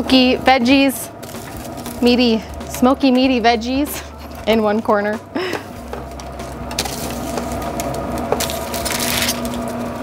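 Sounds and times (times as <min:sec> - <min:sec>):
low hum: 0:00.0 - 0:10.0
tongs scraping food on foil: 0:00.8 - 0:04.4, 0:05.8 - 0:10.0.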